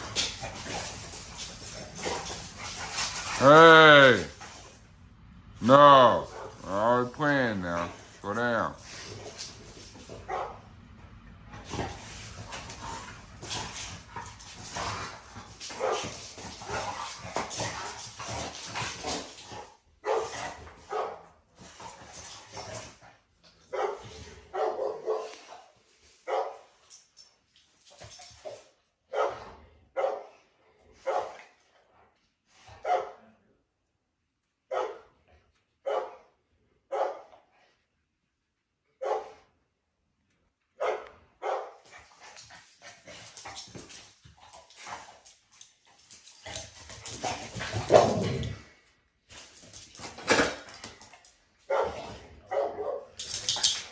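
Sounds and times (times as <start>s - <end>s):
dogs snarling and thrashing: 0.0s - 5.0s, 5.6s - 10.7s, 11.4s - 25.8s, 26.4s - 29.9s, 41.5s - 53.9s
dog barking: 10.3s - 10.6s, 15.8s - 16.1s, 20.0s - 21.2s, 23.7s - 25.3s, 26.3s - 26.6s, 29.1s - 30.3s, 31.0s - 31.4s, 32.8s - 33.3s, 34.7s - 35.1s, 35.8s - 36.3s, 36.9s - 37.3s, 39.0s - 39.5s, 40.8s - 41.8s, 51.7s - 53.2s.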